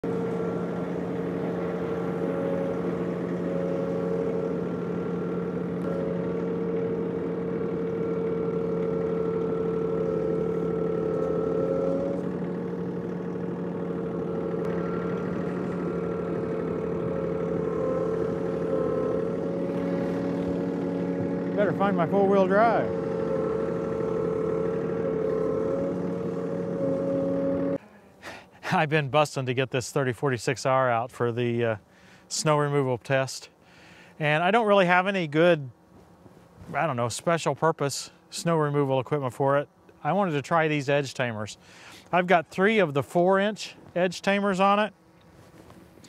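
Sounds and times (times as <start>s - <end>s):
loader bucket pushing snow: 0.0s - 28.8s
tractor diesel engine running: 0.0s - 28.9s.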